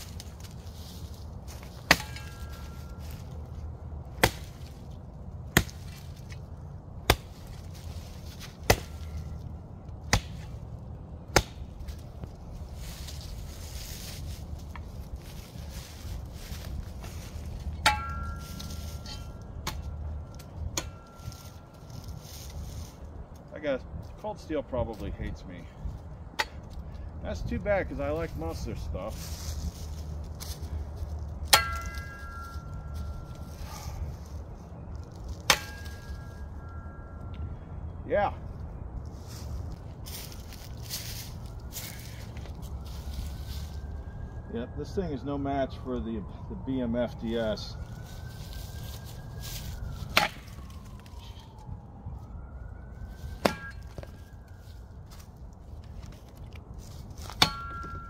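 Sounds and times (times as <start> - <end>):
shovel blade chopping branch: 1.5 - 3.3, 4.1 - 4.7, 5.5 - 6.4, 7.0 - 9.4, 10.1 - 10.6, 11.3 - 12.0, 17.0 - 21.5, 31.4 - 33.0, 35.3 - 36.3, 50.0 - 50.7, 53.3 - 54.1, 57.2 - 58.0
metal blade ringing: 1.9 - 3.0, 17.8 - 19.5, 31.5 - 32.9, 35.5 - 37.1, 57.4 - 58.0.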